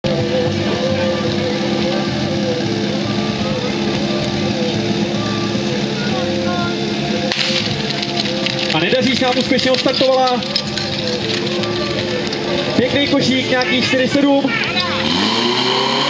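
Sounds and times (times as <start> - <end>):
small engine idling: 0.0 - 16.0
rush of noise: 10.4 - 16.0.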